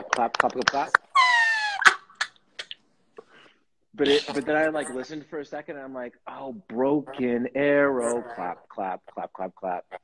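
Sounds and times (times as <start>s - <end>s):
man's high-pitched laughter squeal: 1.1s - 2.3s.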